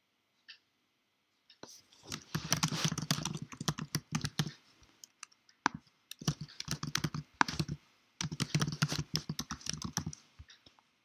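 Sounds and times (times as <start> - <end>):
typing on computer keyboard: 2.1 - 10.2.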